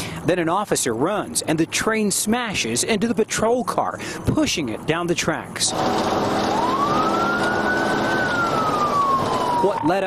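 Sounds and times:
car road noise: 0:00.0 - 0:10.0
police siren wailing: 0:05.7 - 0:10.0.

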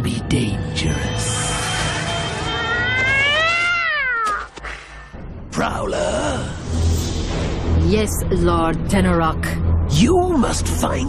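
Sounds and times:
cat-like yowl: 0:02.6 - 0:04.5.

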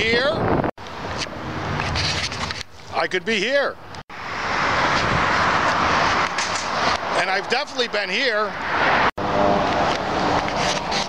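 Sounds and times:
vehicle passing by: 0:04.1 - 0:11.0.

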